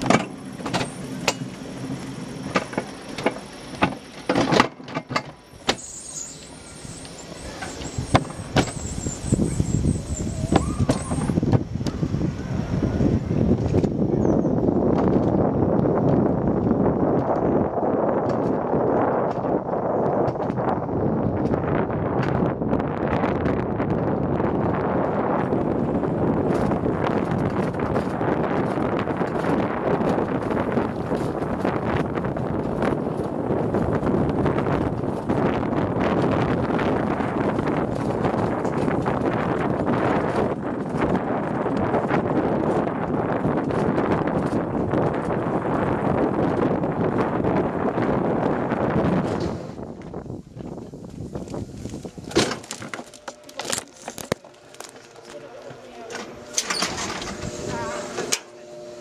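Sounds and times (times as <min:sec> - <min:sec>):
coaster wheels rumbling on rails: 0:00.0 - 0:59.0
wind on microphone: 0:00.0 - 0:59.0.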